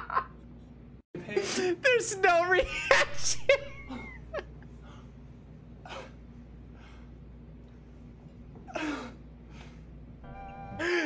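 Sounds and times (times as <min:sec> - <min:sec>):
steady musical chord: 0:10.2 - 0:11.0.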